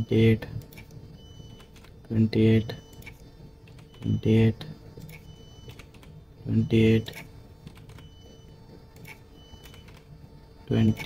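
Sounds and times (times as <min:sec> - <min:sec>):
computer keyboard keystrokes: 0:01.6 - 0:02.0, 0:05.0 - 0:06.1, 0:07.1 - 0:08.1, 0:09.0 - 0:10.1.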